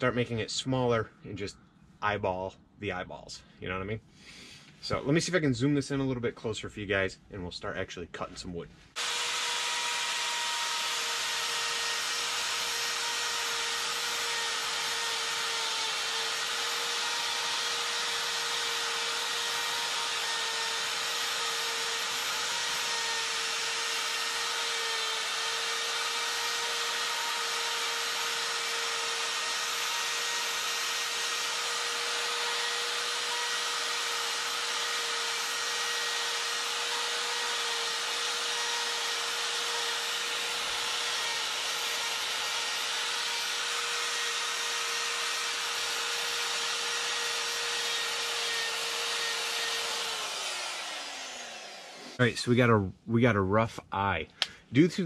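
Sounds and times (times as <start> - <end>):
die grinder whine: 8.9 - 52.2.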